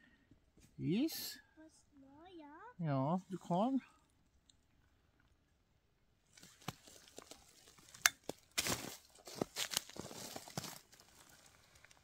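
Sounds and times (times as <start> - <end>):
rustling and crinkling: 6.3 - 12.0.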